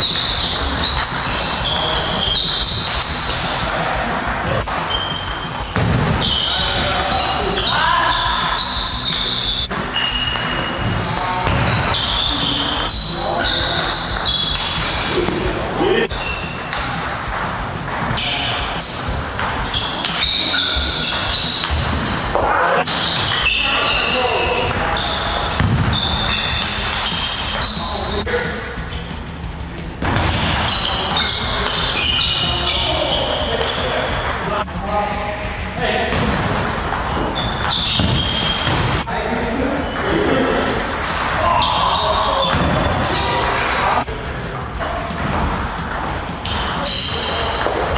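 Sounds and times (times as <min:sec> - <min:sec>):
voices: 0:00.0 - 0:21.7, 0:22.3 - 0:47.9
music: 0:00.0 - 0:47.9.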